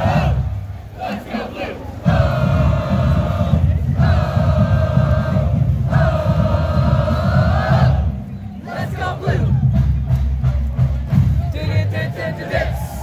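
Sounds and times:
scattered voices: 0.0s - 13.0s
people yelling in unison: 12.1s - 13.0s.

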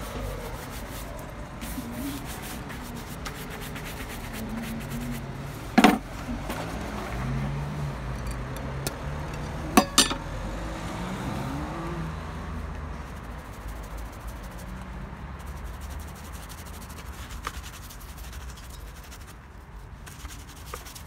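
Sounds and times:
hand buffing leather shoe: 0.0s - 6.0s, 13.2s - 19.4s, 20.0s - 21.0s
street noise: 0.0s - 21.0s.

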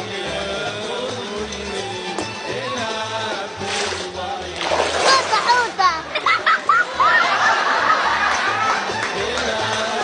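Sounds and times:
background music: 0.0s - 10.0s
water splashing: 3.6s - 6.6s.

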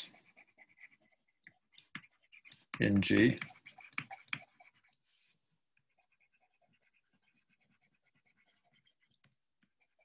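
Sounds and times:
stylus scratching on tablet screen: 0.0s - 10.0s.

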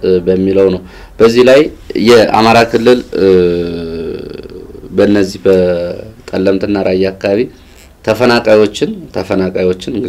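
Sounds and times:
man saying long ehh: 3.1s - 5.0s.

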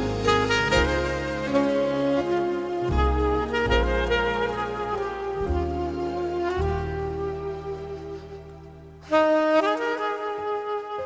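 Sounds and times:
soprano saxophone smooth jazz: 0.0s - 11.0s.

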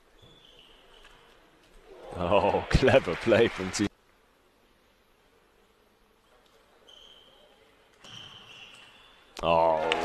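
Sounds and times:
shoes squeaking on court floor: 0.0s - 1.3s, 6.8s - 9.3s.

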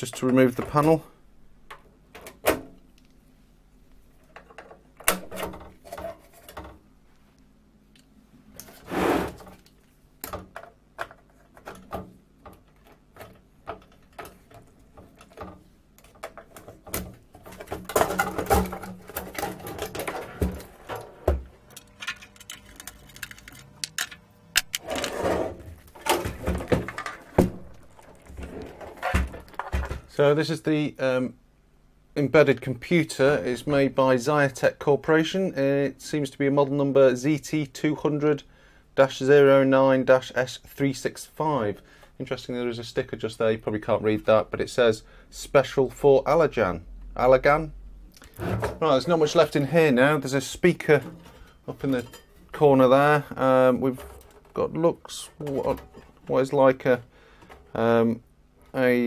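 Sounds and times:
metallic clicks and clatter: 21.8s - 24.8s.

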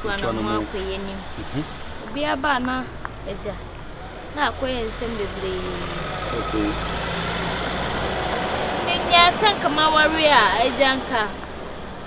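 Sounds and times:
person speaking: 0.0s - 3.6s
motor vehicle engine rumble: 0.0s - 12.0s
road noise: 0.0s - 12.0s.

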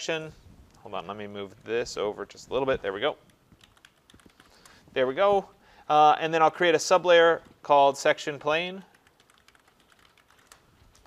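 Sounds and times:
faint keyboard typing: 2.8s - 4.8s, 7.3s - 7.7s, 8.8s - 11.0s.

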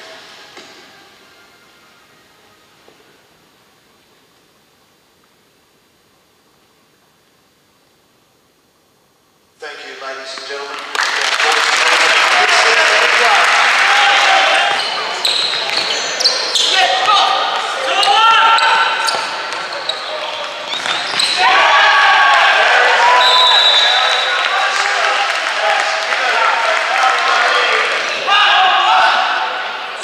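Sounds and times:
players calling out: 12.1s - 30.0s
sneakers squeaking on wooden floor: 14.7s - 21.4s.

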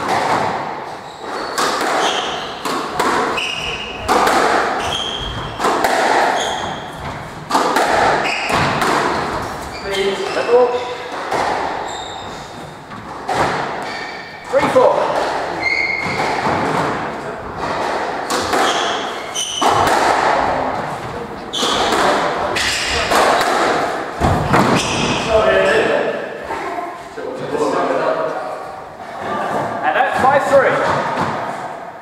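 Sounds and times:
squash ball hits echoing: 0.0s - 26.8s, 29.4s - 32.0s
shoe squeaks on wooden floor: 0.9s - 2.7s, 3.3s - 4.1s, 4.7s - 5.7s, 6.3s - 7.2s, 8.2s - 10.8s, 11.7s - 12.9s, 13.8s - 14.5s, 15.5s - 16.5s, 18.6s - 19.9s, 21.5s - 22.9s.

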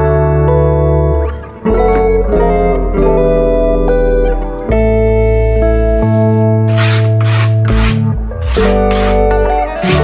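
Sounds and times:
guitar music: 0.0s - 10.0s
hand rubbing grip tape: 5.2s - 10.0s.

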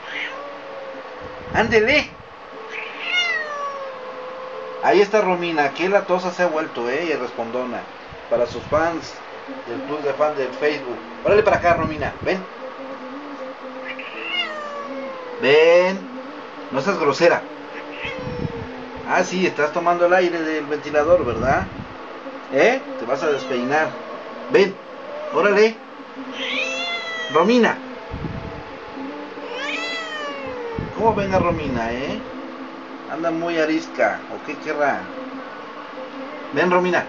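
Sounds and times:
cat meowing: 0.0s - 0.6s, 2.7s - 4.1s, 13.8s - 15.5s, 17.7s - 18.7s, 23.3s - 24.0s, 26.3s - 27.5s, 29.4s - 31.0s
steady low hum: 0.0s - 37.0s.

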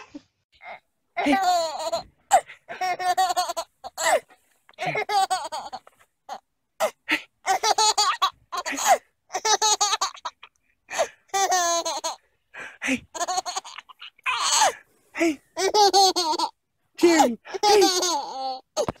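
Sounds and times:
baby laughing: 0.0s - 6.9s, 7.5s - 12.2s, 13.1s - 14.8s, 15.6s - 16.6s, 17.5s - 19.0s.

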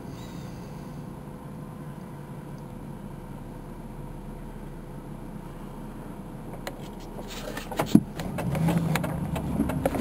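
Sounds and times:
low engine rumble: 0.0s - 10.0s.

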